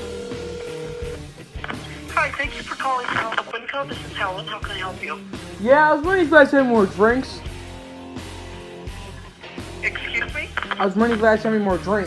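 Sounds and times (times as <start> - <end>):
telephone ringback tone: 0.0 - 1.2
background music with low beat: 0.0 - 12.0.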